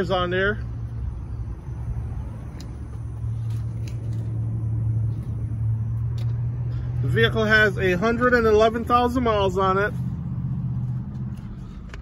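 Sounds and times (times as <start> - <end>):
low engine hum: 0.0 - 12.0.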